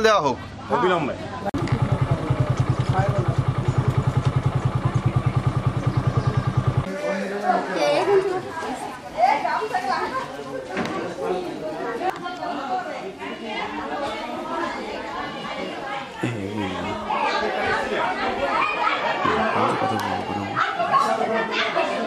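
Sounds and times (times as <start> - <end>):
indistinct chatter: 0.0 - 22.0.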